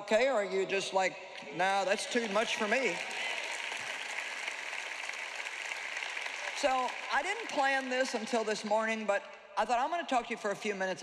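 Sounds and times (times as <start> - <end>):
audience applause: 1.7 - 8.7.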